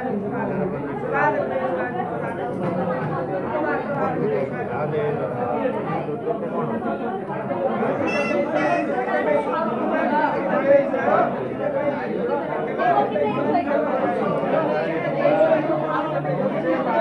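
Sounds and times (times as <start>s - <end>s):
people talking over one another: 0.0s - 17.0s
higher voice: 8.0s - 9.2s.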